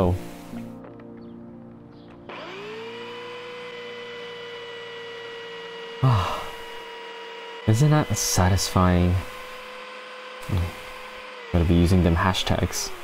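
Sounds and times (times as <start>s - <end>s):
belt sander motor whine: 2.3s - 13.0s.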